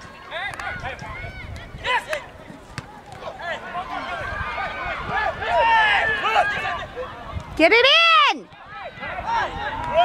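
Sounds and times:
people shouting: 0.2 - 10.0.

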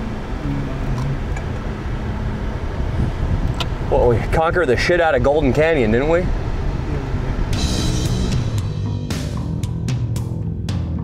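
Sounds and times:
car engine and tyres rumble: 0.0 - 11.0.

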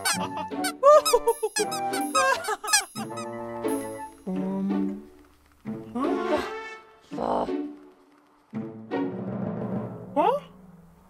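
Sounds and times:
high wavering squeaks: 0.0 - 4.3
background music: 0.0 - 11.0.

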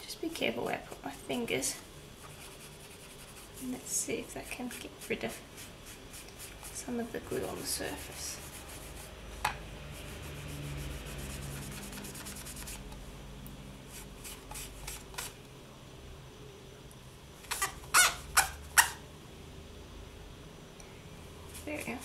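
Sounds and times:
tissue scrubbing clay surface: 2.3 - 9.2
sharp scratches or knocks: 7.8 - 13.0.

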